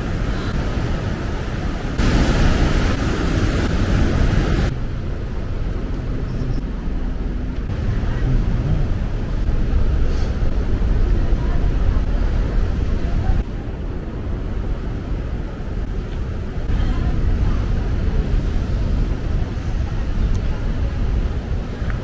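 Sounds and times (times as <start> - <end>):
steady low rumble: 0.0 - 22.0
faint voices of passers-by: 5.3 - 22.0.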